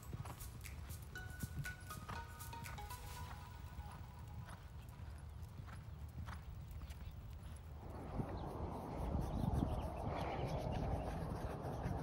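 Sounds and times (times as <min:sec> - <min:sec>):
horse hoofbeats on sand: 0:00.0 - 0:09.8.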